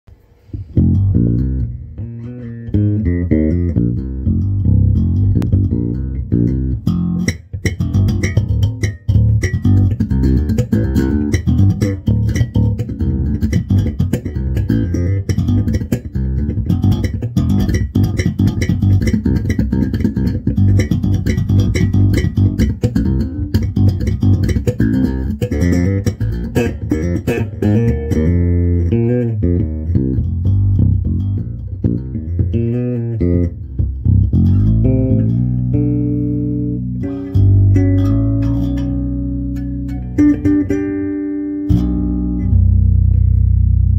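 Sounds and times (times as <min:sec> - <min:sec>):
electric bass plucked notes: 0:00.1 - 0:43.9.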